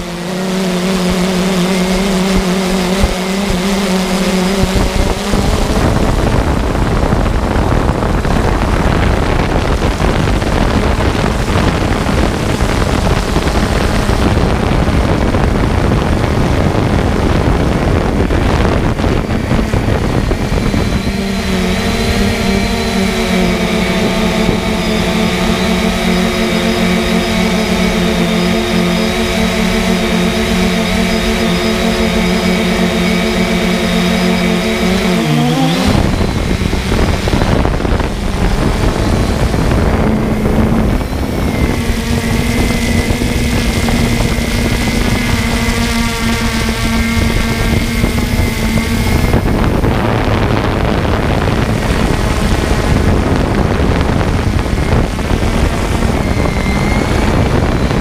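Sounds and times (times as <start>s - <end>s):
motor humming: 0.0s - 58.0s
rushing air noise: 0.0s - 58.0s.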